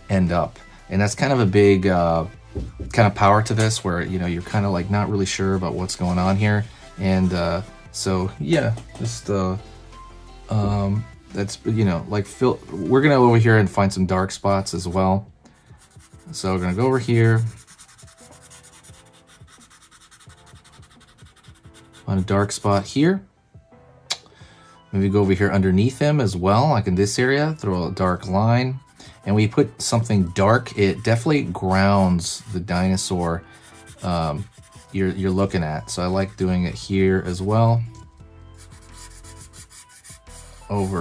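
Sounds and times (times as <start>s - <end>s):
marker rubbing on paper: 15.8s - 22.5s, 30.7s - 41.0s.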